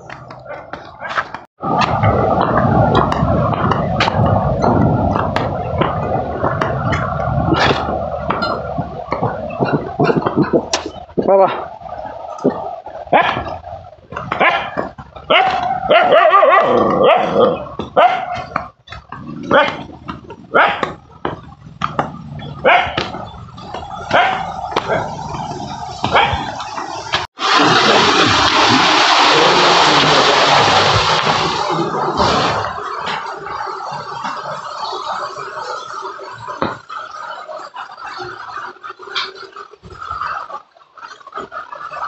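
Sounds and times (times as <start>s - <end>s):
loud rushing noise: 1.6s - 16.0s, 21.7s - 33.5s
dog barking and whining: 14.3s - 18.5s, 20.5s - 21.0s, 22.5s - 23.2s, 24.1s - 25.1s.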